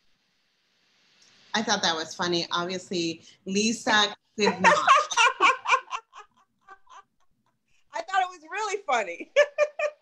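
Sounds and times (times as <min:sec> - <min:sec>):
woman laughing: 0:04.4 - 0:07.2, 0:09.2 - 0:10.0.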